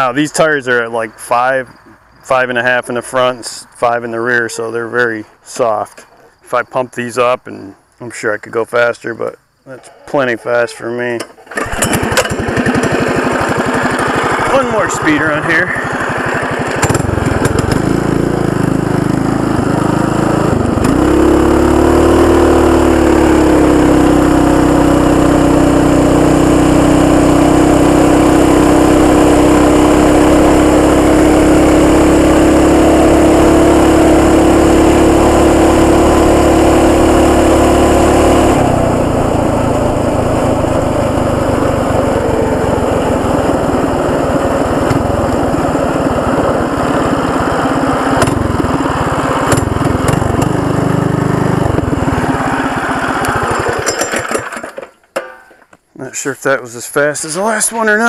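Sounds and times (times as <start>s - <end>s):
mini bike engine at full throttle: 11.5s - 55.4s.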